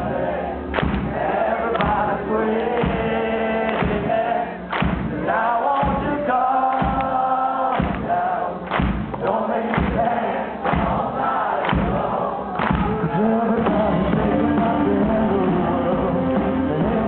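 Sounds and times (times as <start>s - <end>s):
held guitar chords: 0.0s - 17.0s
people singing: 0.0s - 17.0s
heavy drum hits: 0.8s - 1.2s, 4.8s - 5.2s, 7.8s - 8.1s, 8.7s - 9.2s, 9.8s - 10.1s, 10.7s - 15.2s
punk rock band playing live: 12.7s - 17.0s.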